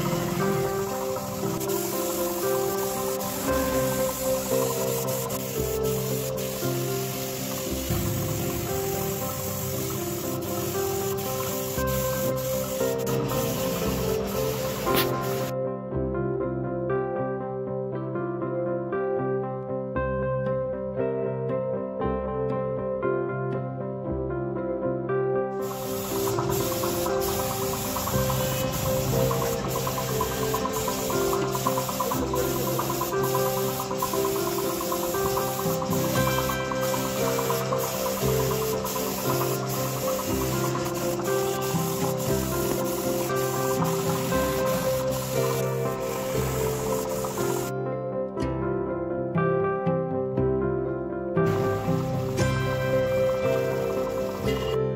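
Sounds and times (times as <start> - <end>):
paint spray gun hissing: 0.0 - 15.5, 25.6 - 47.7, 51.5 - 54.9
background music: 0.0 - 54.9.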